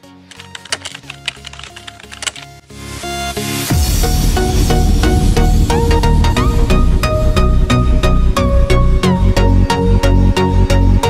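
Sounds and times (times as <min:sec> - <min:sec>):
electronic background music: 0:00.0 - 0:11.0
keyboard key clicks: 0:00.3 - 0:02.5.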